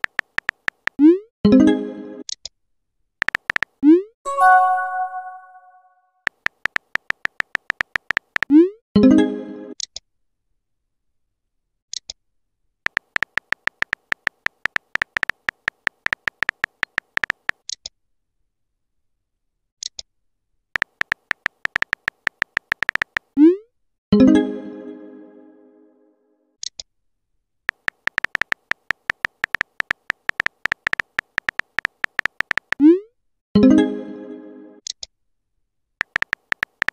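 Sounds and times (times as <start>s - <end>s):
phone keyboard typing clicks: 0.0s - 1.0s, 3.2s - 3.8s, 6.3s - 8.5s, 12.9s - 17.6s, 20.8s - 23.4s, 27.7s - 32.8s, 36.0s - 36.9s.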